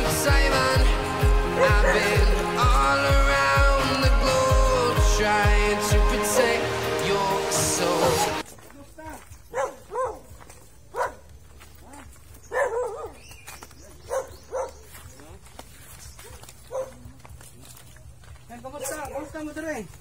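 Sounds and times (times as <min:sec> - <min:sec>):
background music: 0:00.0 - 0:08.4
dog barking: 0:01.6 - 0:02.2, 0:09.5 - 0:13.2, 0:13.9 - 0:14.9, 0:16.2 - 0:17.1.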